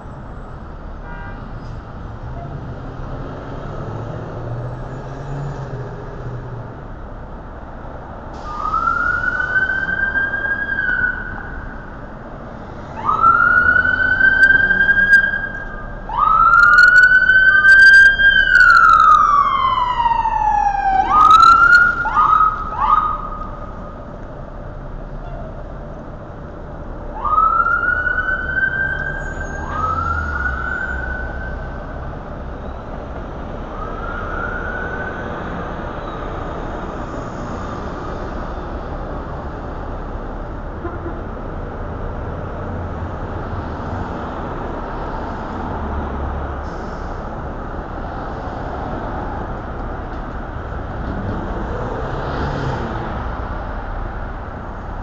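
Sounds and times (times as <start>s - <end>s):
street traffic: 0.0s - 55.0s
police siren wailing: 8.4s - 12.1s, 12.8s - 24.1s, 27.0s - 32.3s, 33.5s - 36.0s.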